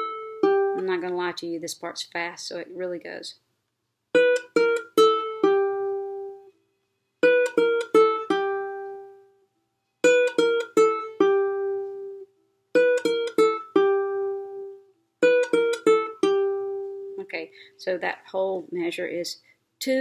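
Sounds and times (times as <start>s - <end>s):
ukulele plucked run: 0.0s - 1.3s, 4.1s - 6.6s, 7.2s - 9.4s, 10.0s - 17.2s.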